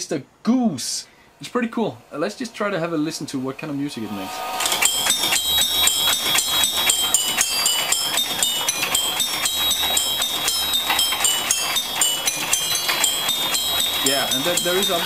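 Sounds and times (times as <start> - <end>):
high ringing melody notes: 3.8 - 15.0
mechanism clicks and rattles: 4.6 - 15.0.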